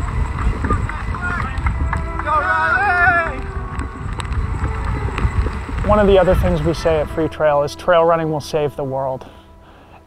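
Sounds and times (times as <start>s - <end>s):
wind buffeting microphone: 0.0s - 8.9s.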